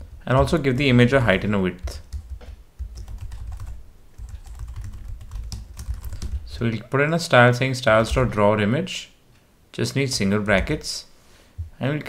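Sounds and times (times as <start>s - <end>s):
keyboard typing: 0.4s - 1.0s, 1.8s - 6.4s.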